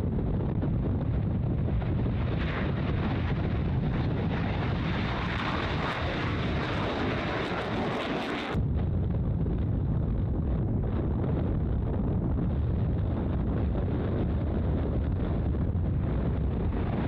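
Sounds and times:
jet engines at full power: 0:00.0 - 0:17.0
low rumble: 0:00.0 - 0:17.0
wind on microphone: 0:00.0 - 0:17.0.

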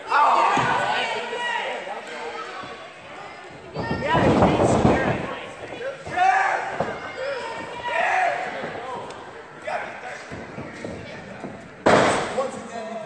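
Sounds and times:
shouting voices echoing: 0:00.0 - 0:12.4.

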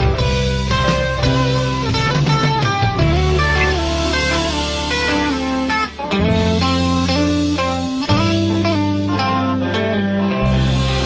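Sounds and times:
electric guitar melody: 0:00.0 - 0:11.0
steady low bass: 0:00.0 - 0:11.0.

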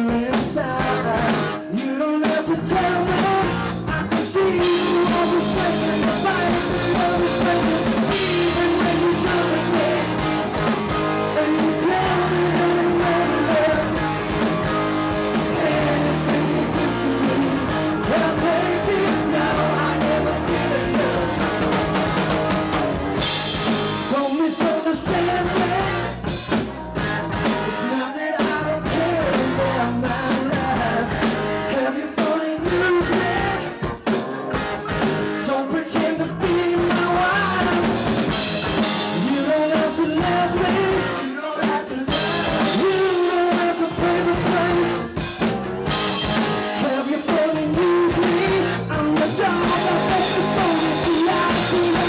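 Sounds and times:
live rock band playing: 0:00.0 - 0:52.0.

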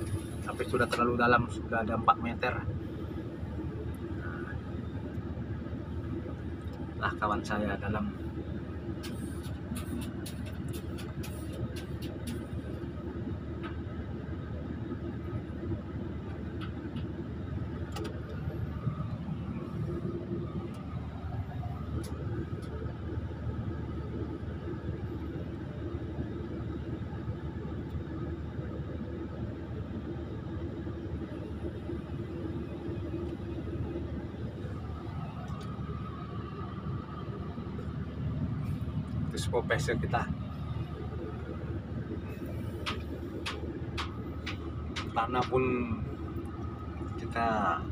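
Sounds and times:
diesel engine running: 0:00.0 - 0:47.9.

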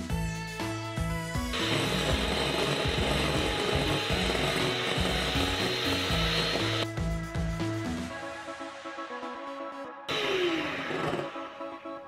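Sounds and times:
electric hand mixer whirring: 0:01.5 - 0:06.9, 0:10.1 - 0:12.0.

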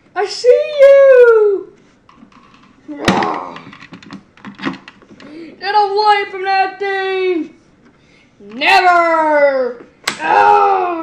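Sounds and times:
sharp smack of toys clashing: 0:03.0 - 0:04.8, 0:10.0 - 0:10.6.

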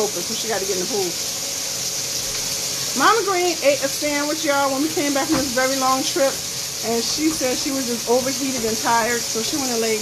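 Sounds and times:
chicken sizzling in oil: 0:00.0 - 0:10.0.

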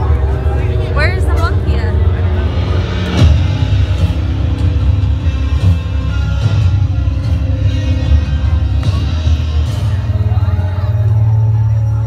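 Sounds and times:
crowd voices: 0:00.0 - 0:12.0
loud music with heavy bass: 0:00.0 - 0:12.0.

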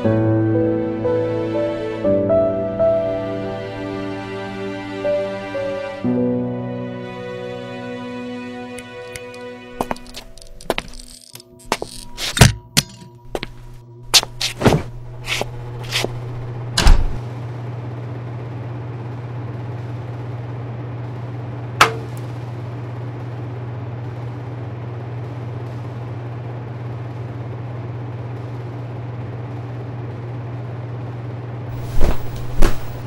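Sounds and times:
steady low hum: 0:00.0 - 0:33.0
heavy thump: 0:31.8 - 0:33.0.

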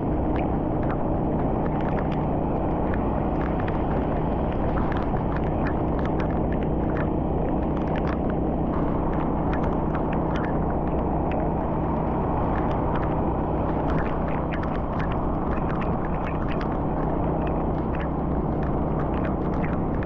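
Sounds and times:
car road and engine rumble: 0:00.0 - 0:20.0
raindrops ticking on windshield: 0:00.2 - 0:20.0.

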